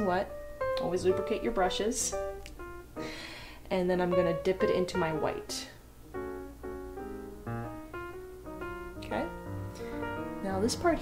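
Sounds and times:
piano music: 0.0s - 11.0s.

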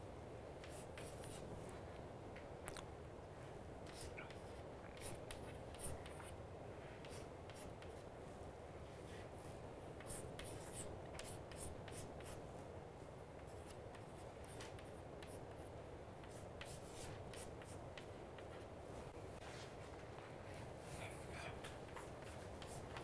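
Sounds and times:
low room hum: 0.0s - 23.0s.

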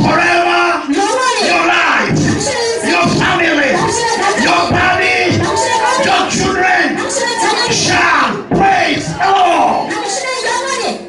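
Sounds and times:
man shouting through a microphone: 0.0s - 10.0s
congregation voices: 0.0s - 11.0s.

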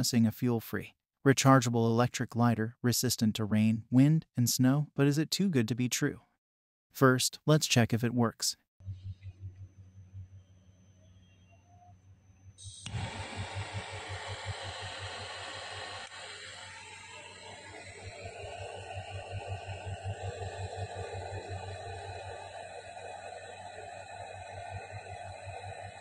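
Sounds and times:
jet torch lighter hissing: 12.6s - 26.0s.

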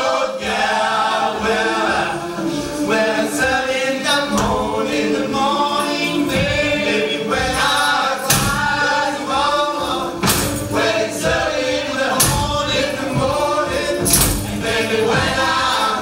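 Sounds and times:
choir singing: 0.0s - 16.0s
percussion hits: 0.4s - 16.0s.

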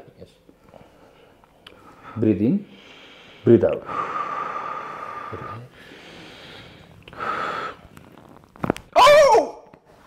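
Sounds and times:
man breathing deeply: 0.6s - 8.0s
spine joints cracking: 7.8s - 9.0s.

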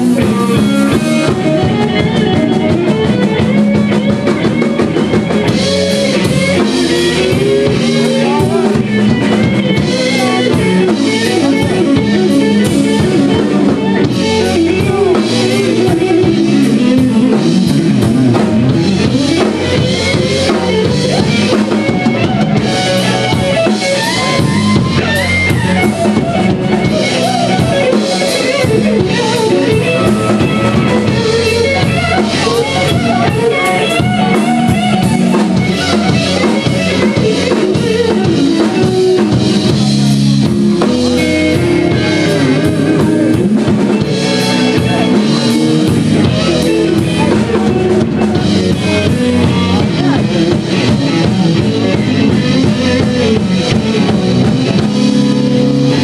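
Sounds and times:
drum kit steady beat: 0.0s - 56.0s
electric bass: 0.0s - 56.0s
electric guitar: 0.0s - 56.0s.

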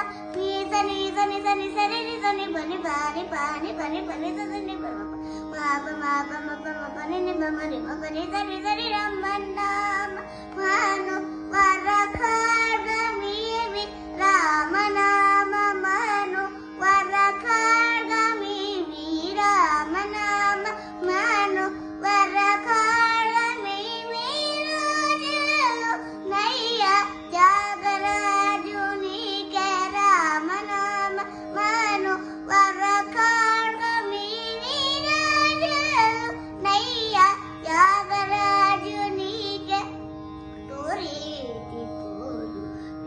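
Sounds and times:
girl singing devotional song: 0.0s - 40.0s, 40.6s - 43.0s
steady drone: 0.0s - 43.0s.

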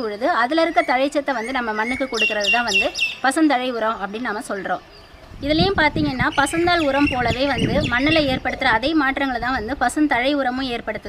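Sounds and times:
woman talking: 0.0s - 11.0s
bird chirping: 0.4s - 8.8s.

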